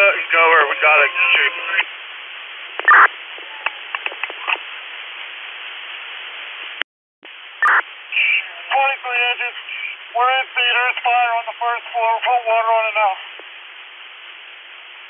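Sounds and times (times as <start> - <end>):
voice over radio: 0.0 - 1.9, 7.6 - 13.2
radio channel hiss: 0.0 - 15.0
radio static burst: 0.0 - 15.0
radio clicks: 2.7 - 4.6.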